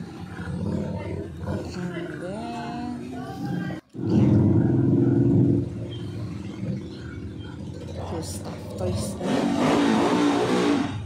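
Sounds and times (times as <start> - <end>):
low rumble: 3.7 - 9.7.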